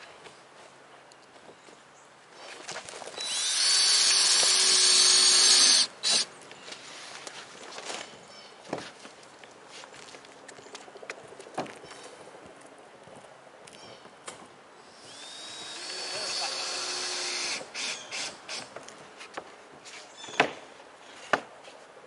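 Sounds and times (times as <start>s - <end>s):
cordless drill whining: 3.2s - 6.3s, 15.0s - 18.3s.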